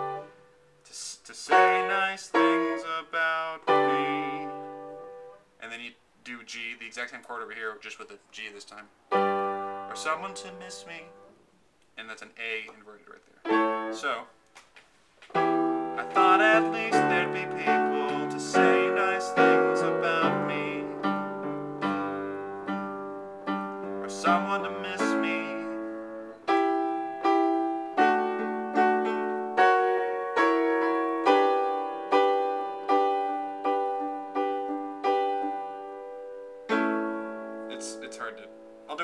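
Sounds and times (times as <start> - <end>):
piano chords: 0.0 - 0.8, 1.4 - 5.4, 9.1 - 11.4, 13.4 - 14.2, 15.3 - 39.0
man singing: 0.9 - 4.7, 16.0 - 21.2, 24.0 - 25.9.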